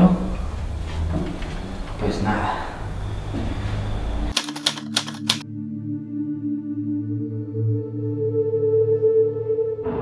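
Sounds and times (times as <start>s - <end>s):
sharp typewriter-like clicks: 4.3s - 5.4s
ambient music drone: 5.4s - 10.0s.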